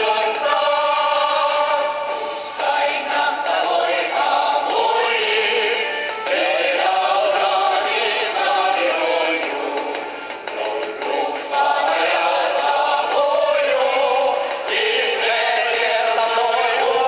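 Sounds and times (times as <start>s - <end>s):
choir of young singers: 0.0s - 17.0s.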